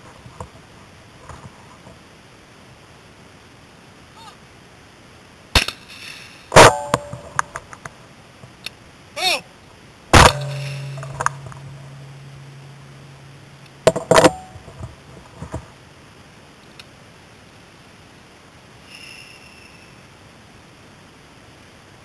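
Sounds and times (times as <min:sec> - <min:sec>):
shotgun shots: 0:05.6 - 0:07.4, 0:10.2 - 0:11.8
low hum: 0:06.5 - 0:07.8, 0:10.1 - 0:16.0
metallic clanks: 0:10.2 - 0:14.9.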